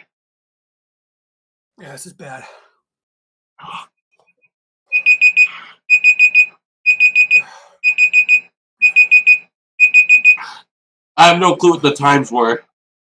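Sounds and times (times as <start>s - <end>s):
electronic alarm beeping: 4.9s - 10.4s.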